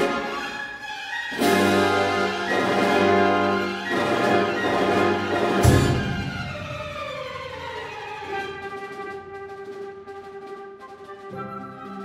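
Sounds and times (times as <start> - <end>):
symphony orchestra playing loudly: 0.0 - 12.0
cymbal crash: 5.4 - 8.2.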